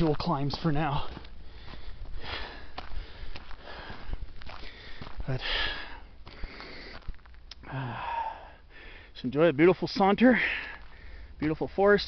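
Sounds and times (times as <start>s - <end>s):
footsteps on dirt road: 0.0s - 7.8s, 8.8s - 12.0s
person breathing: 1.0s - 9.2s, 10.3s - 11.4s.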